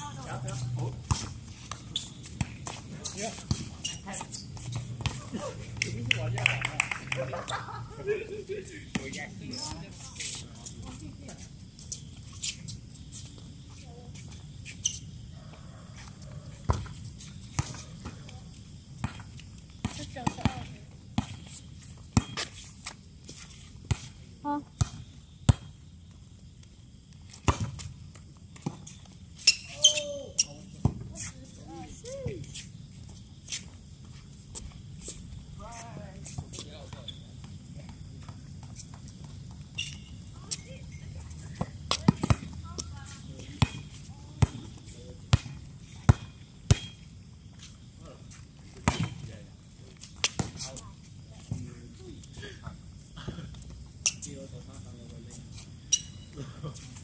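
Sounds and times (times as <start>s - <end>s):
players' voices: 0.0s - 1.2s, 2.8s - 11.4s.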